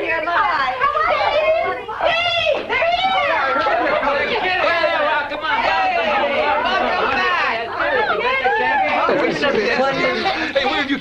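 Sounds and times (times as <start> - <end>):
people talking excitedly: 0.0 - 11.0.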